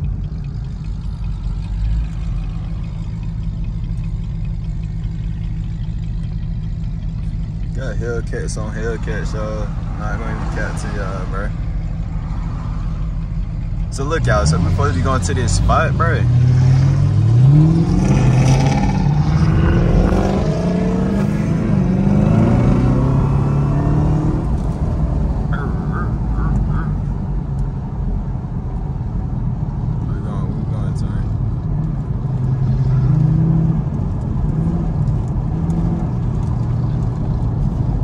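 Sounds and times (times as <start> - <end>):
car engine accelerating through gears: 8.5 - 38.0.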